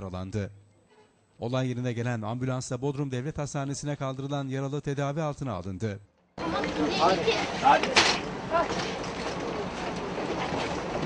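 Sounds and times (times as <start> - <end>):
faint voices: 6.4 - 11.0
steady rumbling outdoor noise: 6.4 - 11.0.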